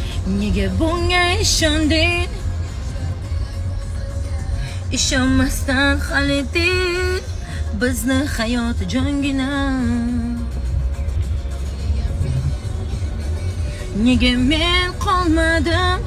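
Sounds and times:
woman singing: 0.0 - 10.7, 11.8 - 16.0
car low rumble: 0.0 - 16.0.

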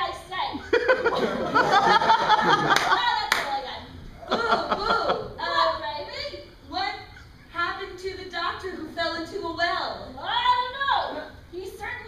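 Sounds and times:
woman speaking: 2.8 - 12.0.

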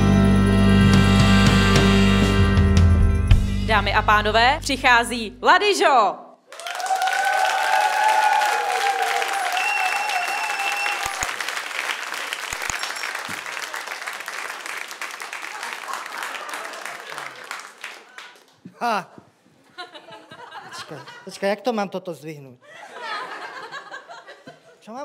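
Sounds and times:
people cheering: 6.5 - 18.5
audience applauding: 6.5 - 18.7
short whistle: 9.5 - 11.2.

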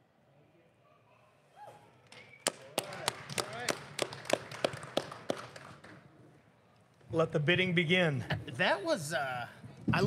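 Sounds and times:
hand claps: 2.1 - 6.0.

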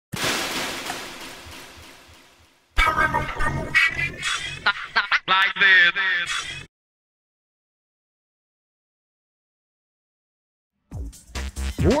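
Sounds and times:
person speaking: 2.8 - 6.6
person laughing: 4.5 - 6.5.

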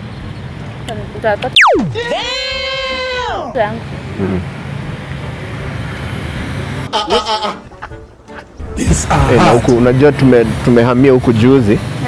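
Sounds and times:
road traffic rumble: 0.0 - 6.9, 7.7 - 12.0
held pitched note sliding down: 1.6 - 2.2.

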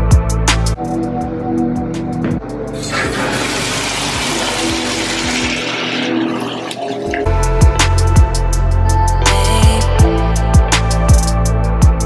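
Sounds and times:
water running into bathtub: 2.9 - 7.3.

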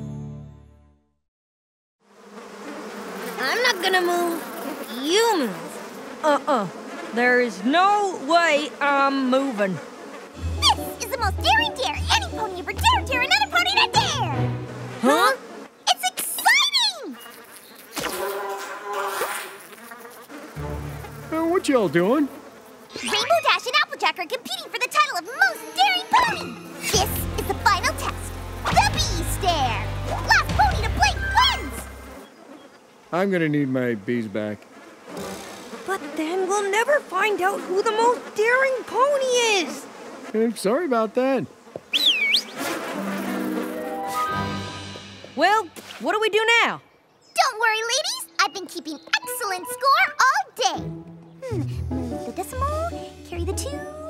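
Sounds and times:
cartoon bee buzzing: 2.0 - 46.6, 47.4 - 54.0
high sliding squeak: 22.9 - 23.6.

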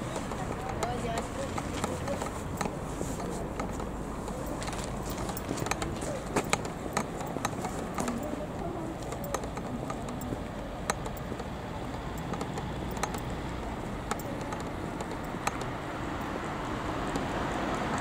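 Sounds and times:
faint voices: 0.0 - 16.8
sharp clicks and taps: 0.0 - 18.0.

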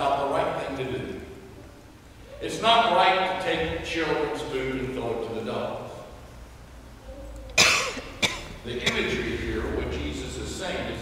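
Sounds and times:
person coughing: 7.6 - 9.2.

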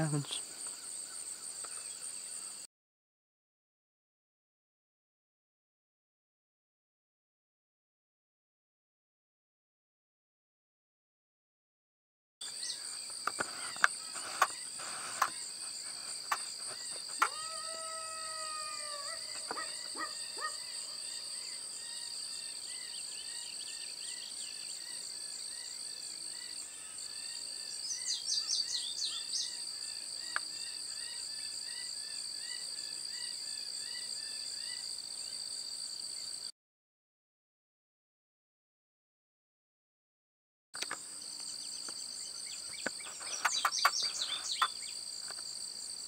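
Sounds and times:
insects chirring: 0.0 - 2.7, 12.4 - 36.5, 40.8 - 46.0
drawn-out pitched call: 13.4 - 21.1, 43.0 - 44.9
birds calling: 19.0 - 21.1, 41.5 - 45.0.

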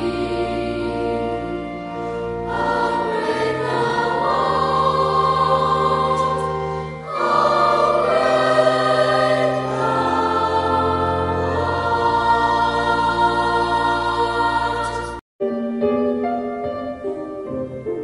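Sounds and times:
choir singing sustained chords: 0.0 - 15.2.

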